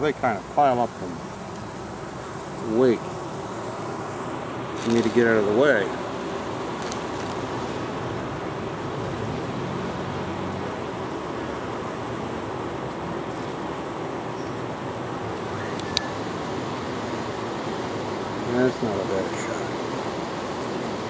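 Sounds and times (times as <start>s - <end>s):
honey bees buzzing: 0.0s - 21.0s.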